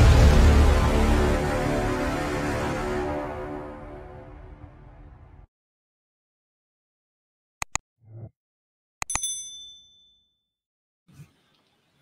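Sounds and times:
notification bell ding: 0:09.1 - 0:10.3.

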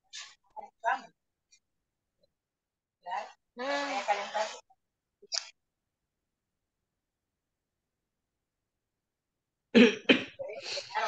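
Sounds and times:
person coughing: 0:09.8 - 0:10.4
throat noise: 0:09.8 - 0:11.0.

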